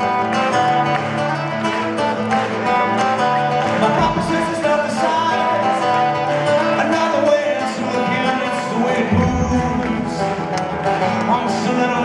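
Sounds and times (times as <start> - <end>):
guitars playing: 0.0 - 12.0
live rock band playing: 0.0 - 12.0.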